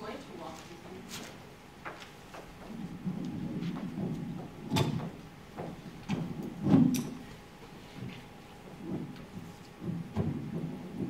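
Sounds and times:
microphone handling rumble: 2.4s - 11.0s.

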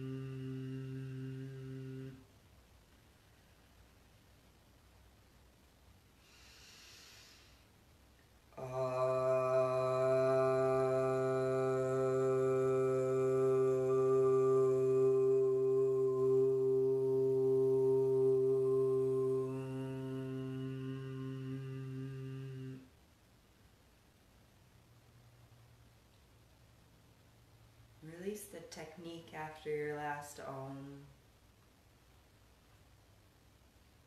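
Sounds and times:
woman chanting: 0.0s - 2.2s, 8.6s - 22.8s, 28.0s - 31.2s
soft in-breath: 6.2s - 7.7s.

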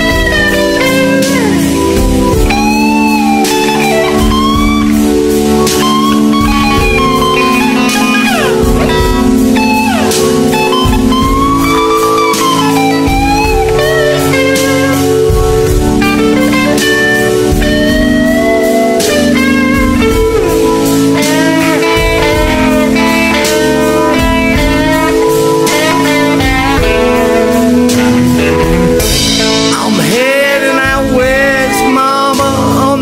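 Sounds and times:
backing chords: 0.0s - 33.0s
electric guitar solo: 0.0s - 33.0s
steady beat: 0.0s - 33.0s.

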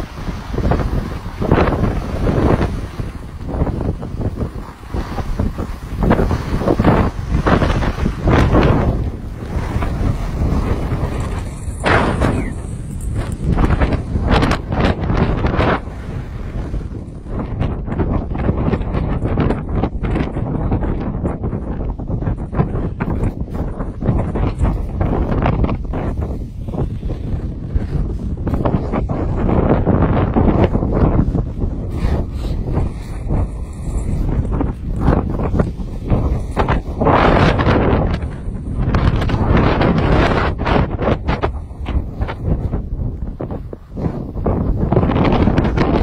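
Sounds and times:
skis scraping on snow: 0.0s - 17.4s, 23.4s - 46.0s
wind buffeting microphone: 0.0s - 46.0s.

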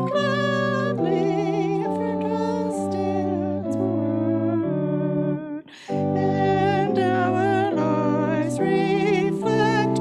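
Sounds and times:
woman singing a hymn with vibrato: 0.0s - 4.8s, 5.4s - 10.0s
organ chords: 0.0s - 10.0s.

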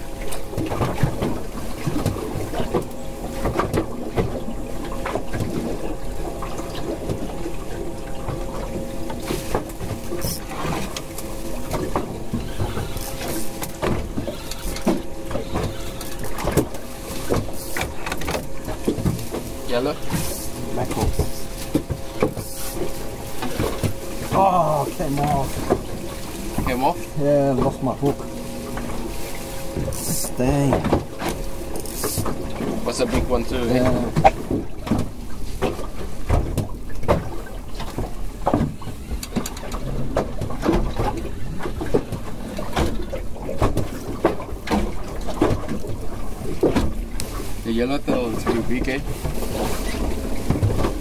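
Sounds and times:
outboard motor idling: 0.0s - 51.0s
water slapping hull: 0.0s - 51.0s
knocks on boat: 0.3s - 5.8s, 8.2s - 51.0s.

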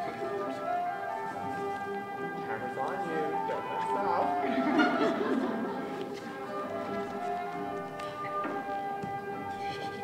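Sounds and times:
music with long held notes: 0.0s - 10.0s.

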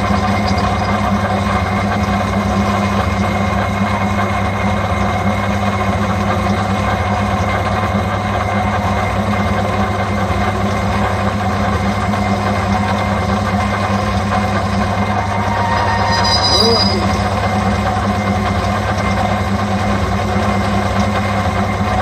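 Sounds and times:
metal lathe running: 0.0s - 22.0s.

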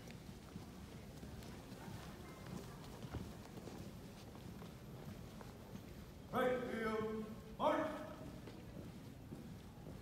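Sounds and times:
marching footsteps on carpet: 0.0s - 6.2s, 8.3s - 10.0s.

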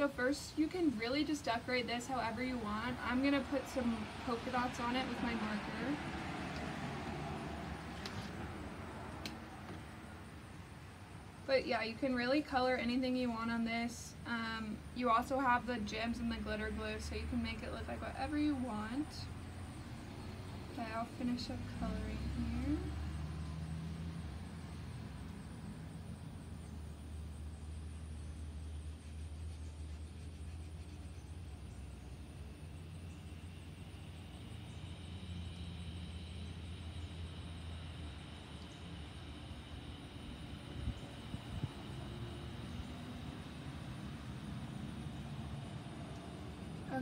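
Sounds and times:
faint high whine: 0.0s - 47.0s
vehicle engine rumble: 0.0s - 47.0s.

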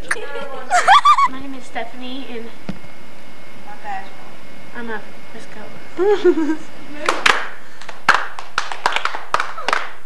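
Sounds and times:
hands clapping: 7.0s - 10.0s.

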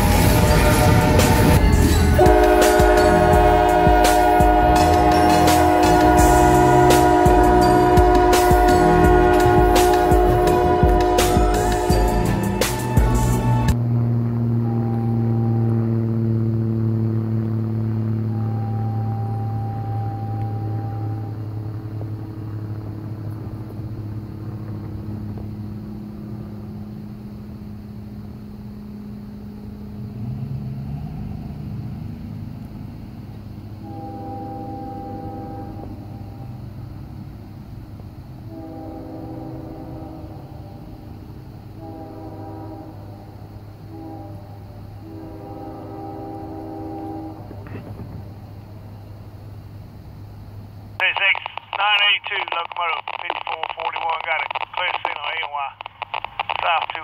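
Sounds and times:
distant locomotive air horn: 0.0s - 13.8s, 14.4s - 16.9s, 17.8s - 22.4s, 33.8s - 36.7s, 38.4s - 48.5s
vehicle pulling away: 0.0s - 33.9s
low engine hum: 0.0s - 34.2s.

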